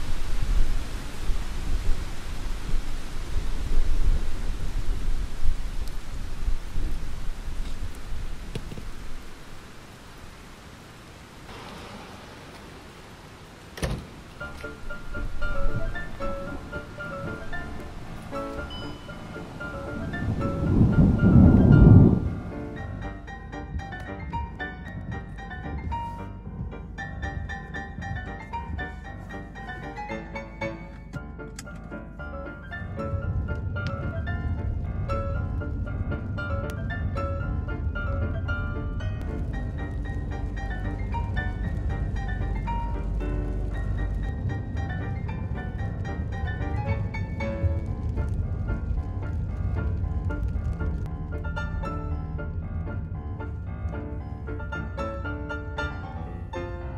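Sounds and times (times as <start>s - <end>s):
car driving on wet road: 0.0s - 23.0s, 39.2s - 54.7s
rain hissing: 0.0s - 24.6s, 32.2s - 55.4s
background music: 14.1s - 56.9s.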